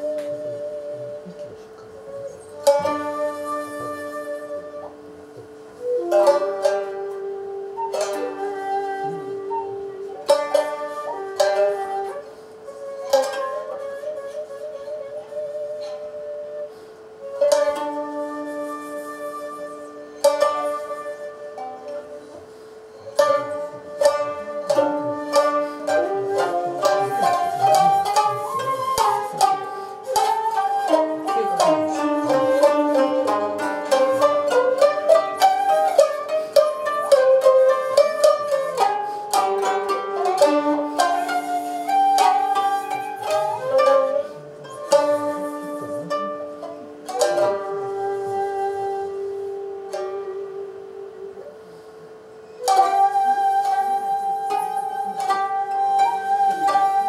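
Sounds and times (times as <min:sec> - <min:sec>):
koto and shamisen plucking: 0:00.0 - 0:57.0.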